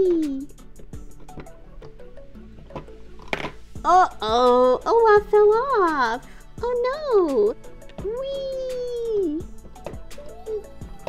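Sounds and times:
soft background music: 0.0 - 11.0
plastic clatter: 2.7 - 3.6
woman speaking: 3.8 - 9.4.

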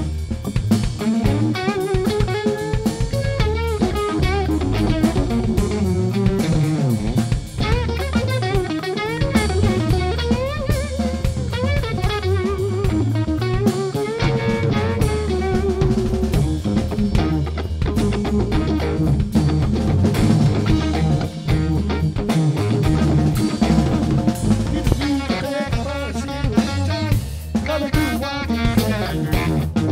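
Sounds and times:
bass guitar: 0.0 - 29.9
drum kit with snare hits: 0.0 - 29.9
electric guitar lead line: 0.0 - 29.9.

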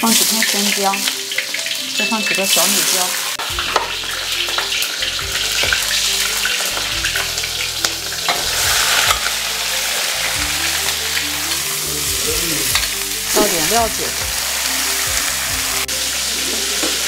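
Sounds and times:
food sizzling in a wok: 0.0 - 17.0
metal spatula scraping a pan: 2.2 - 11.9.

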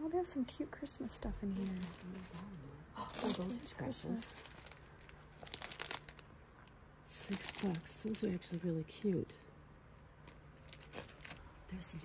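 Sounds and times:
plastic bag crinkling: 1.5 - 8.6, 10.2 - 11.4.

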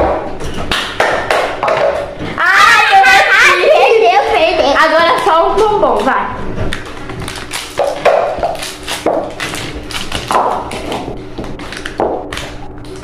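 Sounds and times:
plastic bowls tapping on table: 0.0 - 2.4.

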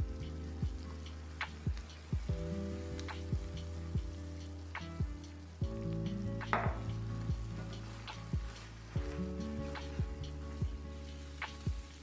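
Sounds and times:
background music with soft beat: 0.0 - 12.0
sauce sizzling in a frying pan: 0.0 - 12.0
spatula stirring: 7.1 - 12.0.

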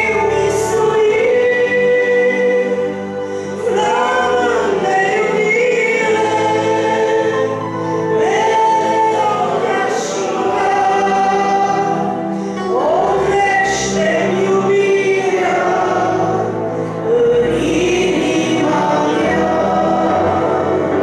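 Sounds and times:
instrumental accompaniment: 0.0 - 21.0.

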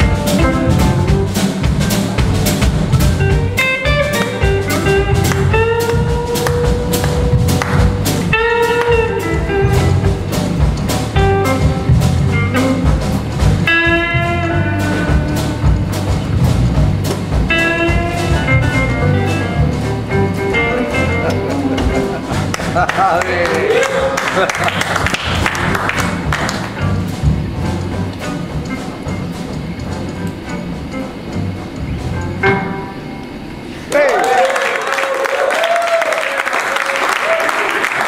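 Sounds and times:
blues-funk band playing: 0.0 - 33.9.

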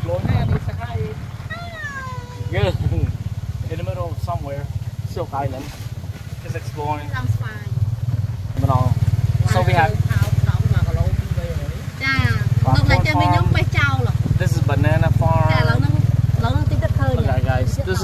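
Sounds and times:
voices talking: 0.0 - 7.8, 8.6 - 18.0
motorcycle engine low drone: 0.0 - 18.0.

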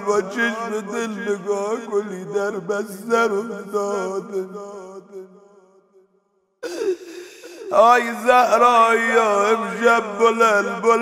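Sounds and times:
man chanting a lament: 0.0 - 5.4, 6.6 - 11.0
man's sobbing gasp: 6.6 - 7.9.

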